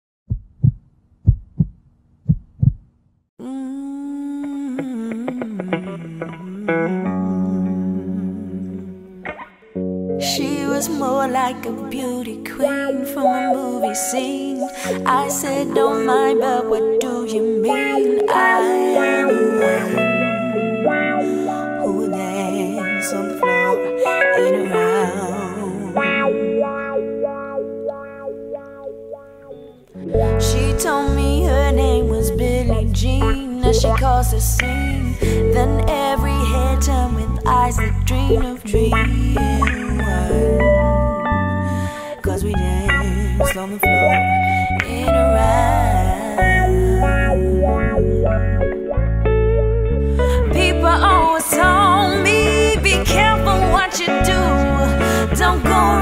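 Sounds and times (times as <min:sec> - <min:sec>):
heartbeat thumps: 0:00.3 - 0:03.0
electric guitar chord warbling: 0:04.8 - 0:56.0.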